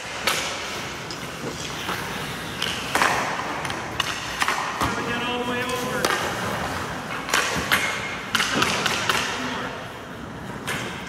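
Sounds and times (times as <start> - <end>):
skate blades scraping ice: 0.0 - 9.5
hockey pucks and sticks clacking: 0.0 - 11.0.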